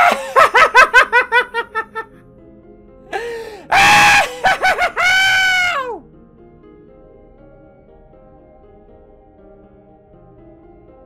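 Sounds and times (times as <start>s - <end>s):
person laughing: 0.0s - 2.2s, 3.2s - 6.0s
soft background music: 0.0s - 11.0s.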